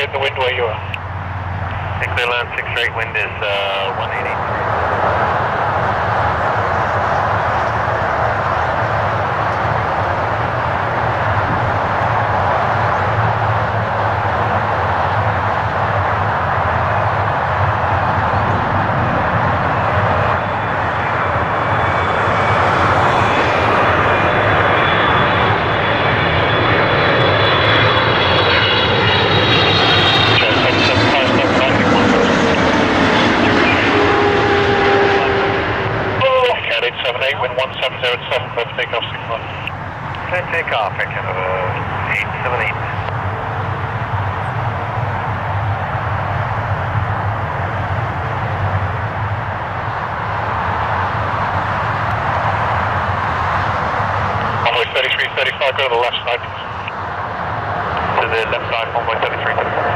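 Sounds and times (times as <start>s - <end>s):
jet airliner engine noise: 0.0s - 59.9s
jet engine whine falling in pitch: 0.0s - 59.9s.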